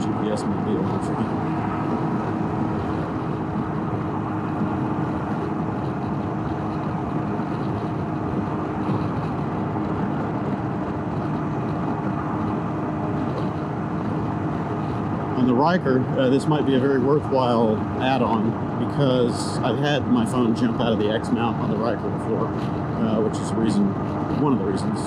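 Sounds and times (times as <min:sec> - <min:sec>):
engine drone: 0:00.0 - 0:25.0
wind and road noise: 0:00.0 - 0:25.0.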